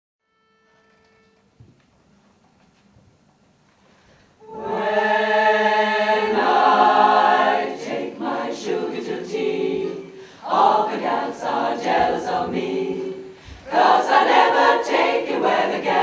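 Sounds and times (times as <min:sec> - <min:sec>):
women's choir singing a cappella: 0:04.4 - 0:16.0.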